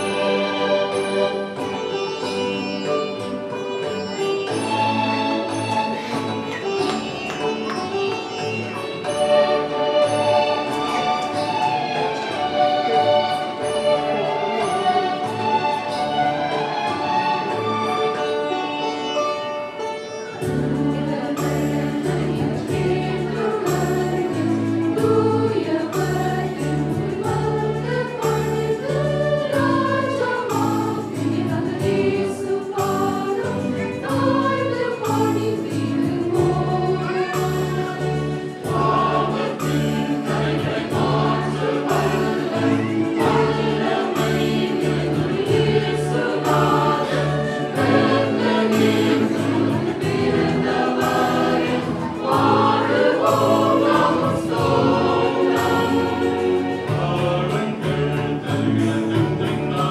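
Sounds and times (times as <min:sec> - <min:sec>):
choir singing a carol: 0:00.0 - 0:59.9
instrumental accompaniment with bass: 0:00.0 - 0:59.9.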